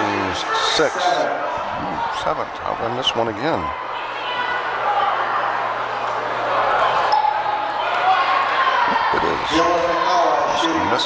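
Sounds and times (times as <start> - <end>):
crowd chatter in a gymnasium: 0.0 - 11.0.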